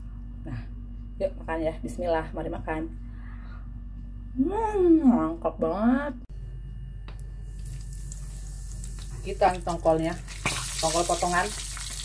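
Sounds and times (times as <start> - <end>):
oil sizzling in a frying pan: 7.5 - 12.0.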